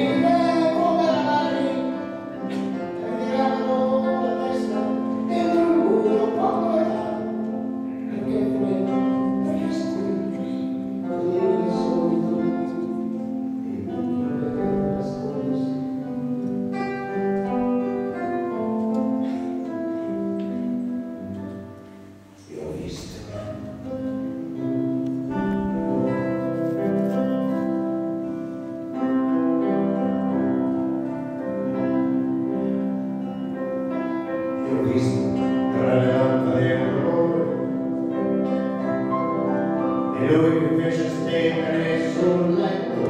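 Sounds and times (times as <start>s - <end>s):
man singing: 0.0s - 16.2s, 34.5s - 43.0s
grand piano: 0.0s - 43.0s.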